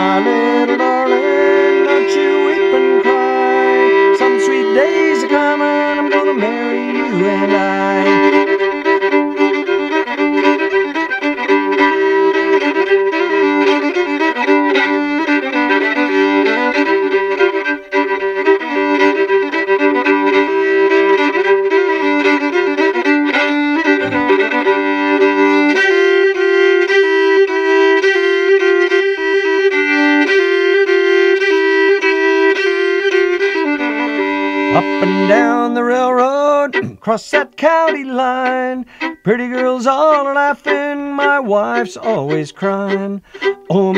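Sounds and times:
solo fiddle with drone: 0:00.0 - 0:43.9.

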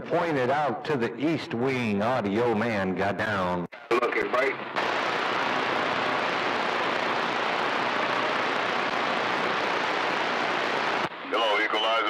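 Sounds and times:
radio static hiss: 0:03.6 - 0:12.0.

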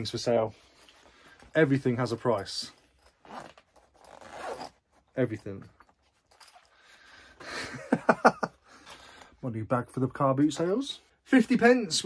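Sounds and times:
zipper being pulled: 0:03.0 - 0:05.2.

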